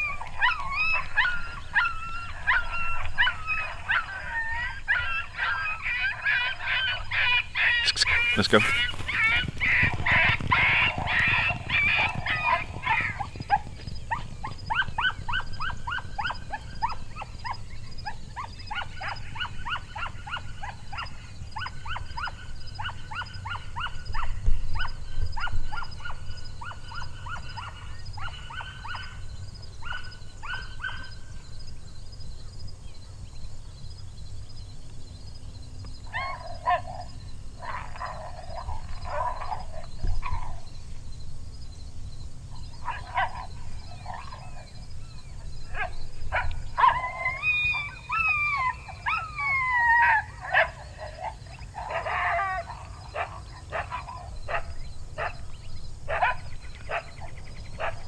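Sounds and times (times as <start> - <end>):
canine yips: 0.0 - 29.2, 29.8 - 31.2, 36.1 - 40.7, 45.3 - 55.4
fuller canine calls: 0.0 - 29.2, 29.8 - 31.2, 36.1 - 40.7, 42.6 - 55.4, 56.1 - 58.0.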